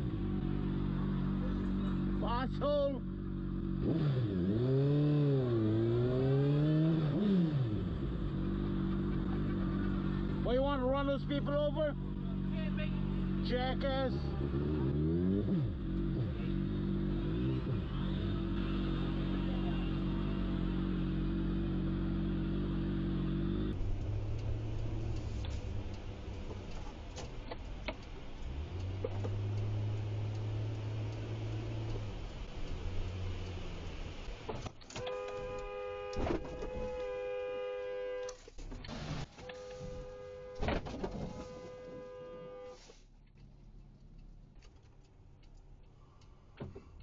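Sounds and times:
motorcycle engine revving: 0:00.0 - 0:27.2
car hum and road noise: 0:00.0 - 0:47.0
car horn blast: 0:35.0 - 0:38.4, 0:39.4 - 0:42.9.

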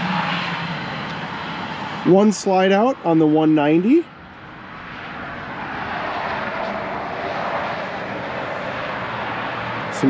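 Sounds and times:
passing motor rushing: 0:00.0 - 0:03.6, 0:04.3 - 0:10.0.

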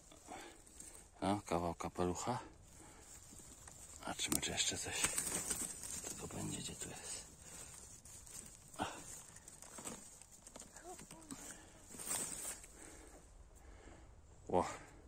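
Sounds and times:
faint rustling of grass and ferns: 0:00.0 - 0:15.0.

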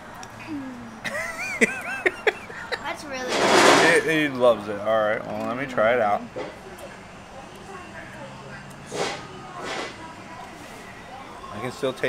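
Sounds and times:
man laughing: 0:01.0 - 0:02.8.

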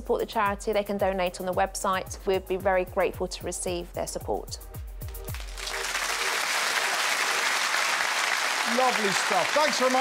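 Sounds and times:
background music with low bass: 0:00.0 - 0:10.0
studio audience applauding: 0:05.1 - 0:10.0.

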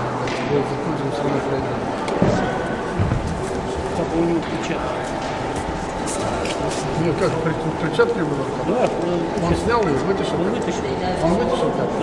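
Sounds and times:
indistinct chatter in a hall: 0:00.0 - 0:12.0.

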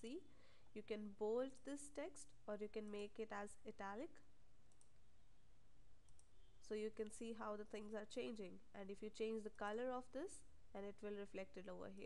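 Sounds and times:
computer mouse click: 0:04.7 - 0:05.0, 0:06.0 - 0:06.4.

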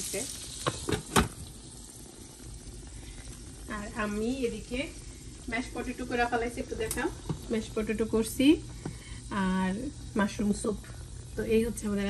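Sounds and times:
meat sizzling in a pan: 0:00.0 - 0:12.0.

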